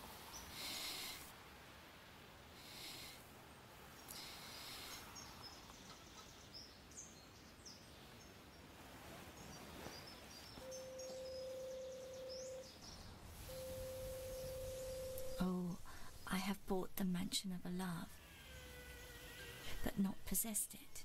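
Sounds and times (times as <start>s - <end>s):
bird chirps: 9.4s - 15.5s
steady mid-pitched tone: 13.4s - 15.7s.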